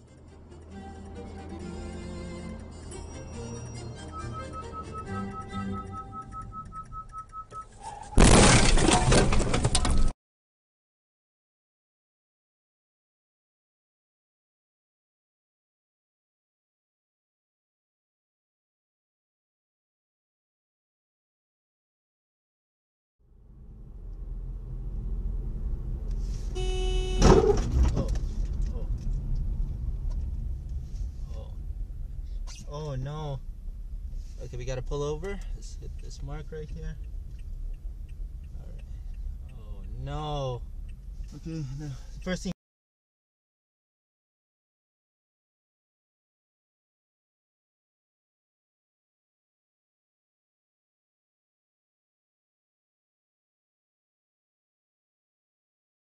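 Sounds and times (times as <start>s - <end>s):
quiet background music: 0.0s - 6.5s
car cabin road noise: 0.0s - 10.1s, 23.4s - 42.6s
car collision crash: 8.0s - 10.1s, 27.1s - 28.0s
loud sharp bang: 8.1s - 9.3s
crunching rattling debris: 8.2s - 10.1s
car horn blast: 26.5s - 27.6s.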